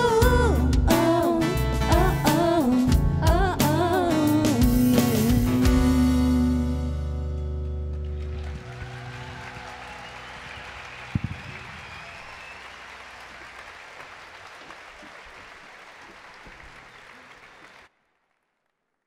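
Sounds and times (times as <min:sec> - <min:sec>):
large audience applauding: 0:07.9 - 0:18.4.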